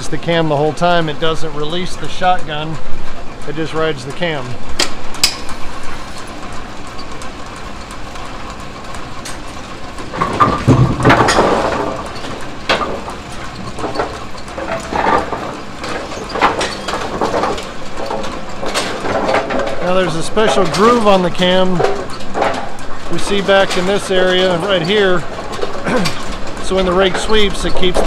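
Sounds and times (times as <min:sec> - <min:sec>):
motor hum: 0:00.0 - 0:28.0
metallic clanks and clicks: 0:10.0 - 0:28.0.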